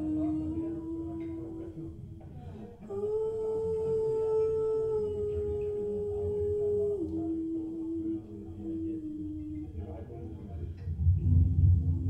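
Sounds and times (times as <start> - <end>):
woman singing a long note: 0.0 - 2.0, 2.8 - 10.0
low murmur: 0.0 - 12.0.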